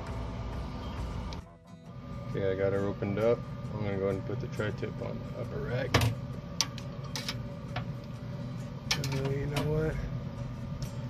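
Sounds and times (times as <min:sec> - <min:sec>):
steady low hum: 0:00.0 - 0:11.0
metal tongs clicking on grill rack: 0:08.9 - 0:09.7.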